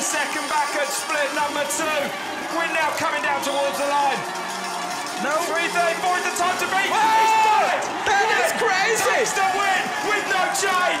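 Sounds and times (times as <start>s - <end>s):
man shouting excited commentary: 0.0s - 4.2s, 5.2s - 11.0s
crowd cheering: 0.0s - 11.0s.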